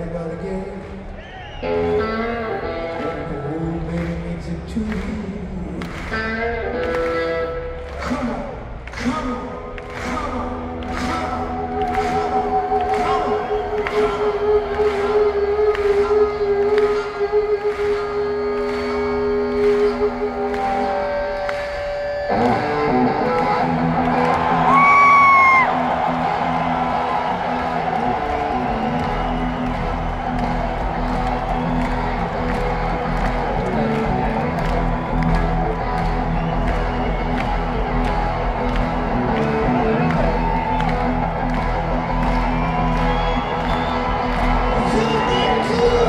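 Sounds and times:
crowd cheering: 0.8 - 46.0
deep bass: 23.3 - 46.0
live rock band playing loudly: 27.7 - 46.0.

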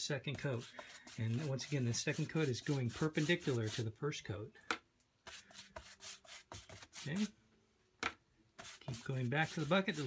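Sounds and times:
scratchy brush strokes on panel: 0.0 - 3.9, 5.2 - 7.3, 8.6 - 10.0.

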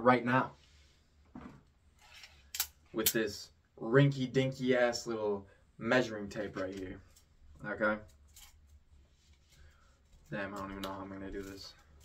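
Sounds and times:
tape measure rustling: 8.0 - 12.0.

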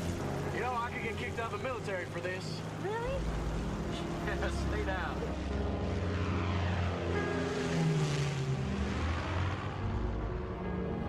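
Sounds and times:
propeller airplane engine droning: 0.0 - 11.0.

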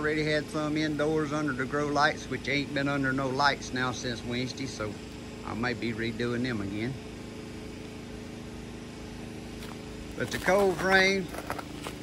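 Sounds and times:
generator engine running: 0.0 - 12.0.

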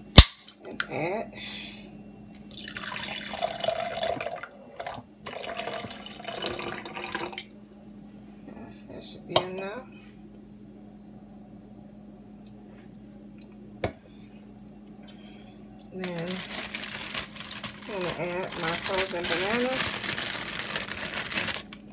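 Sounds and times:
drink pouring and splashing: 2.5 - 7.4.

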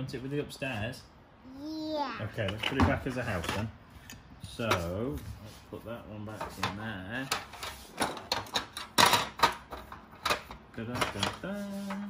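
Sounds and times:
plastic toy pieces knocking: 7.3 - 11.4.

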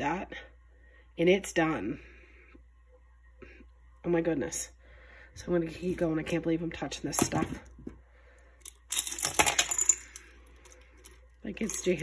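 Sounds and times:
metal charms clinking on glass: 8.6 - 12.0.

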